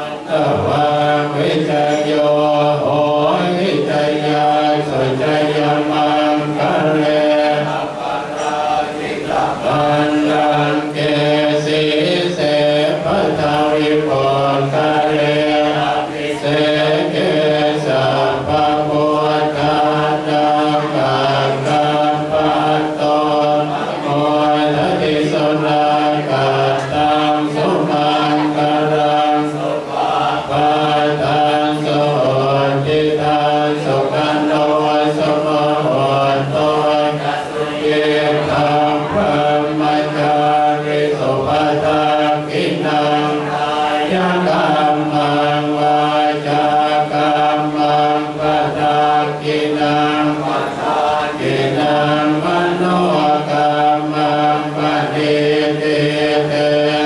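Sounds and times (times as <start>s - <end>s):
monks chanting in unison: 0.0s - 57.0s.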